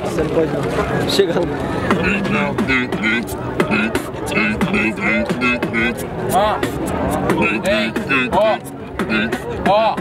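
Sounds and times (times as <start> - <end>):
human beatbox: 1.8 - 10.0.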